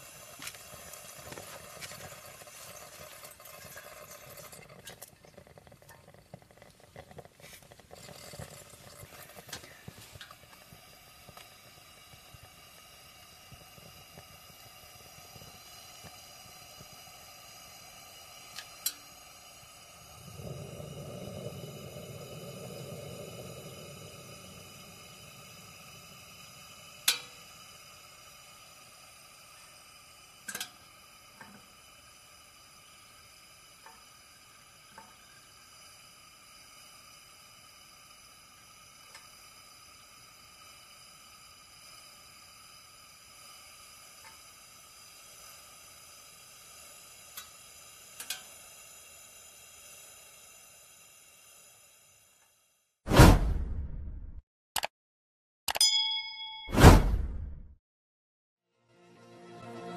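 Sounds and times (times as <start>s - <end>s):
lantern hissing: 0.0s - 53.2s
low rushing sound: 53.1s - 54.4s, 56.7s - 57.7s
sharp clicks or pops: 53.1s - 54.9s.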